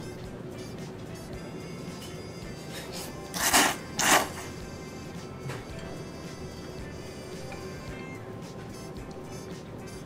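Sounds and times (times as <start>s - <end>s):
person slurping noodles: 2.8s - 4.4s.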